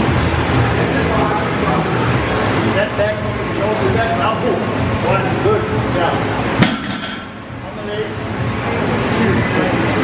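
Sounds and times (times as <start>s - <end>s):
barbell dropped on platform: 6.6s - 7.5s.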